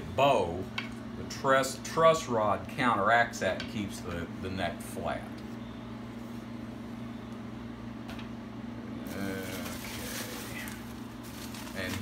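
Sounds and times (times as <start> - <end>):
low room hum: 0.0 - 12.0
plastic bag rustling: 9.1 - 12.0.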